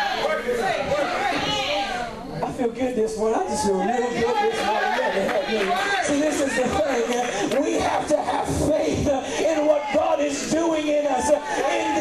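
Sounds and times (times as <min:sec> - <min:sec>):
people talking: 0:00.2 - 0:12.0.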